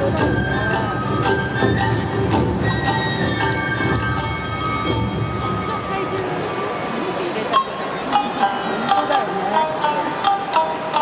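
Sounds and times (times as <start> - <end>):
traditional festival dance music: 0.0 - 11.0
ringing bell-like tones: 1.8 - 11.0.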